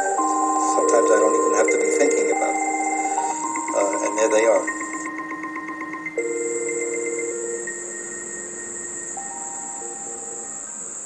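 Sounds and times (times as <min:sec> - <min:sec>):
fast-pulsing high tone: 0:00.0 - 0:11.0
steady very high whine: 0:00.0 - 0:11.0
synthesizer music: 0:00.0 - 0:11.0.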